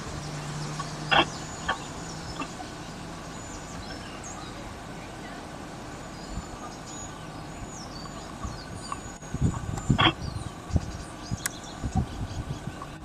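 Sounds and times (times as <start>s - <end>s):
low outdoor background: 0.0s - 13.0s
small birds chirping: 0.0s - 13.0s.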